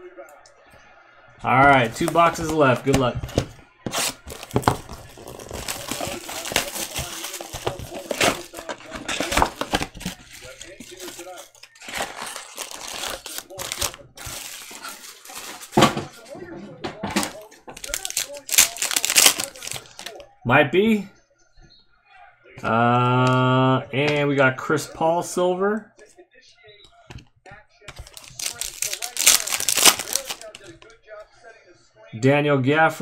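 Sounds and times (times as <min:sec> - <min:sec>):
card packs being torn open: 0:01.5 - 0:15.9, 0:17.2 - 0:20.2, 0:27.9 - 0:30.9.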